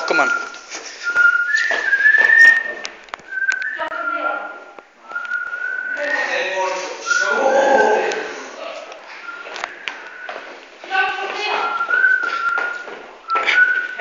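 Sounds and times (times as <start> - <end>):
person whistling: 0.0 - 4.3, 5.0 - 6.4, 7.0 - 7.8, 9.2 - 10.5, 11.7 - 14.0
voices talking: 5.8 - 9.1.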